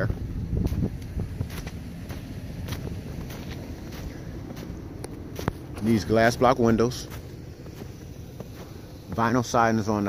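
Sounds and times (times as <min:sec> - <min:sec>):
wind rumble on microphone: 0:00.0 - 0:09.4
footsteps in snow: 0:00.0 - 0:10.0.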